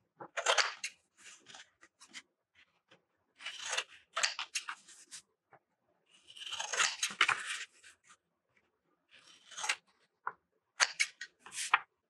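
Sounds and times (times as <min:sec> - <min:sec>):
scissors snipping paper: 0:06.3 - 0:07.7.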